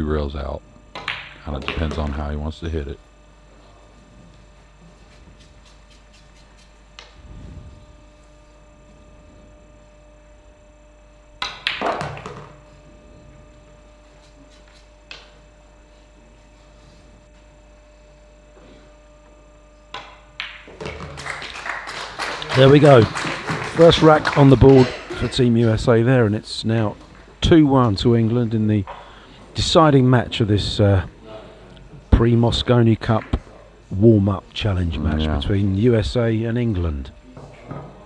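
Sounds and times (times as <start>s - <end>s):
faint steady hum: 0.0s - 38.0s
pool balls clicking: 0.9s - 2.2s, 11.3s - 12.7s, 19.9s - 25.6s.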